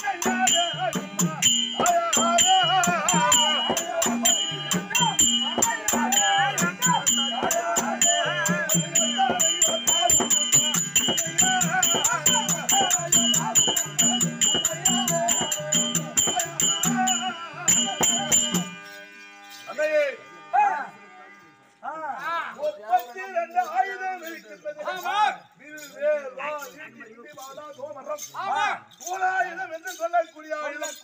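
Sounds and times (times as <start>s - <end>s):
harmonium: 0.0s - 22.0s
jingling metal percussion: 0.0s - 31.0s.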